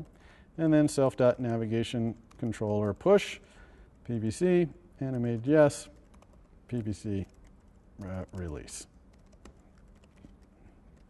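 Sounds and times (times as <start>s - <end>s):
computer keyboard typing: 2.1s - 3.0s, 5.0s - 11.0s.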